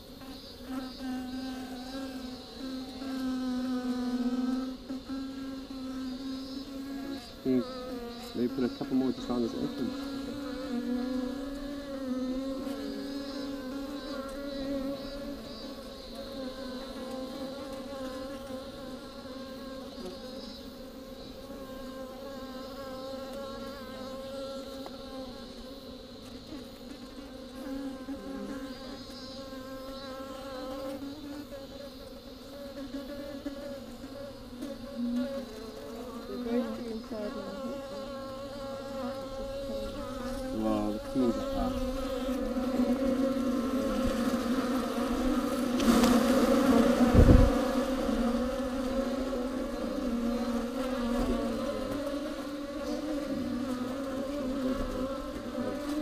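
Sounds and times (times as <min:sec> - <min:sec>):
bees buzzing in a hollow trunk: 0:00.0 - 0:56.0.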